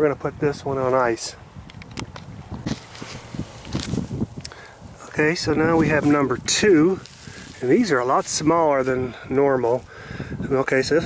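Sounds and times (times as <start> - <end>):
wind rumble on microphone: 0.0 - 11.0
rustling: 2.6 - 9.9.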